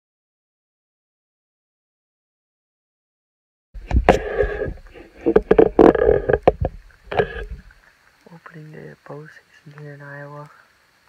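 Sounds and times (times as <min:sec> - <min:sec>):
microphone handling rustling: 0:03.8 - 0:07.8.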